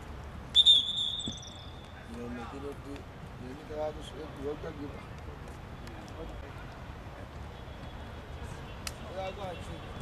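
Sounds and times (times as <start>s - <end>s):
referee's whistle: 0.6s - 1.8s.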